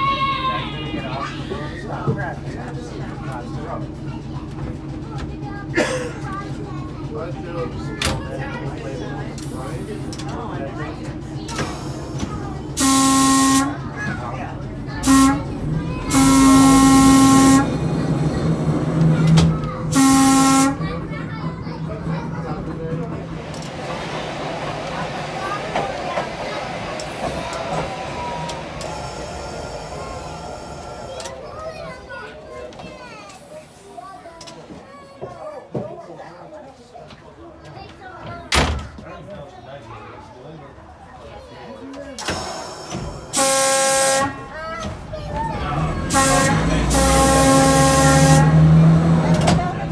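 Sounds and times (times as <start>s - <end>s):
rail clatter: 20.9s - 31.6s, 44.8s - 49.9s.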